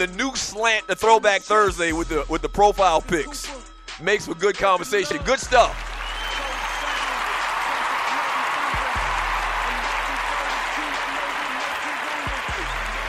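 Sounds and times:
hip hop music: 0.0s - 13.0s
applause: 5.6s - 13.0s.

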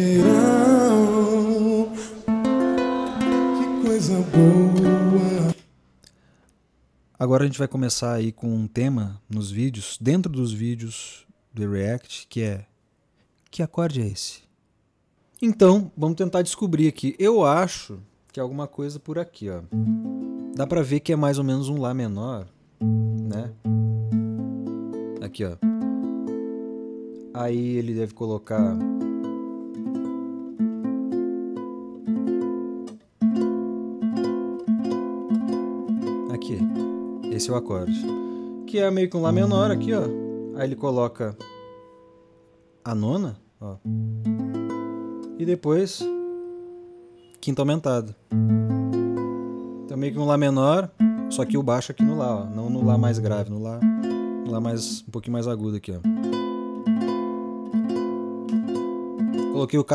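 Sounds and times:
nylon-string guitar picking: 0.0s - 5.6s, 19.7s - 20.6s, 22.8s - 27.4s, 28.5s - 42.2s, 43.8s - 47.4s, 48.3s - 55.1s, 56.1s - 59.6s.

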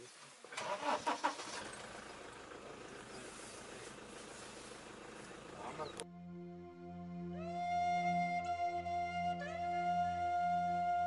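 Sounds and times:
vehicle engine starting and running: 0.5s - 6.0s.

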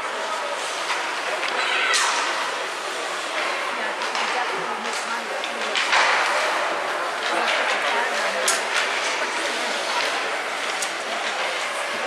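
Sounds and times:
skate blades scraping ice: 0.1s - 12.0s.

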